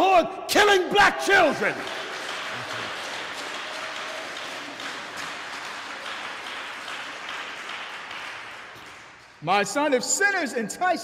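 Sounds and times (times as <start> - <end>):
crowd applauding: 1.3 - 9.4.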